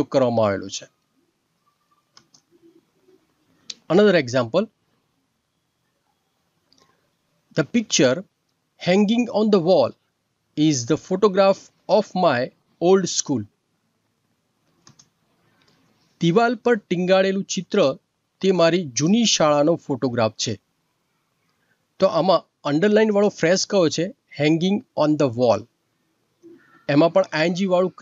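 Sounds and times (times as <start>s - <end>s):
person speaking: 0.0s - 1.0s, 3.6s - 4.8s, 7.5s - 10.0s, 10.6s - 13.5s, 16.2s - 20.6s, 22.0s - 25.7s, 26.4s - 28.0s
computer mouse clicks: 2.1s - 2.6s, 14.7s - 15.9s.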